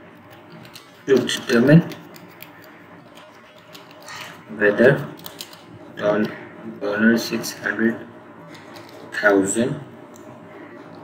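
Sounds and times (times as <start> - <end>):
keyboard typing: 0.2 - 6.4, 8.5 - 9.2.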